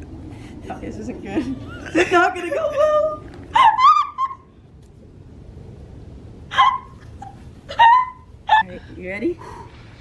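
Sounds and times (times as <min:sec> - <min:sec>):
low steady background rumble: 0:00.0 - 0:10.0
woman laughing: 0:01.3 - 0:04.4.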